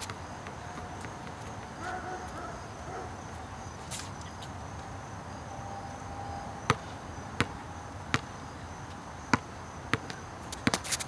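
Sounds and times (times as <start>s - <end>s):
basketball bouncing on court: 0.0s - 2.0s, 6.7s - 8.3s, 9.3s - 10.8s.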